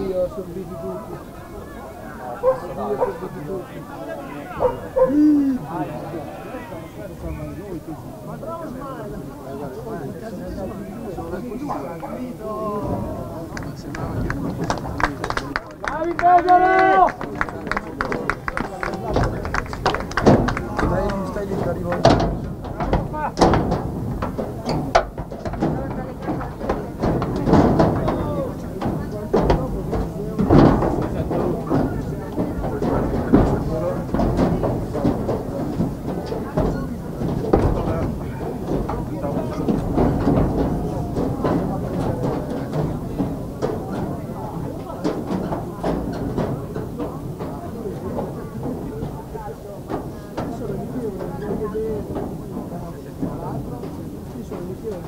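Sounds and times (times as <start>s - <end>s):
indistinct chatter: 0.0s - 55.0s.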